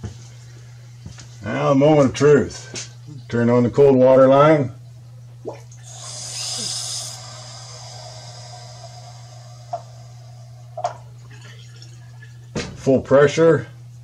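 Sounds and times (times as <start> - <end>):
water hissing through plumbing: 5.4 - 12.5.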